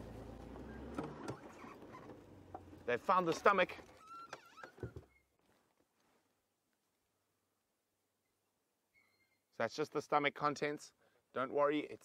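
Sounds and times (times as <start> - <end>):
wild dogs squeaky calls: 8.9 - 9.5.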